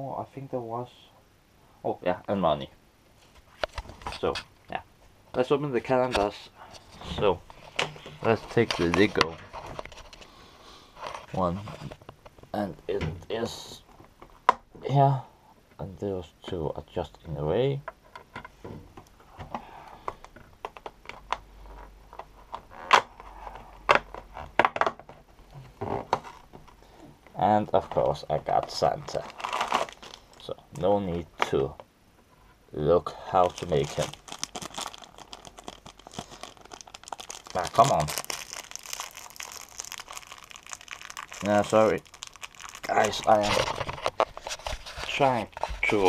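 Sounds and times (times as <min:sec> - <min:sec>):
plastic packaging crinkling: 0:06.7 - 0:12.0, 0:28.2 - 0:30.9, 0:33.3 - 0:46.0.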